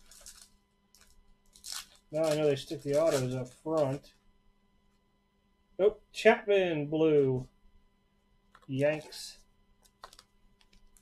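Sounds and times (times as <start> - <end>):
wrapper tearing and crinkling: 0.0 - 4.0, 9.8 - 11.0.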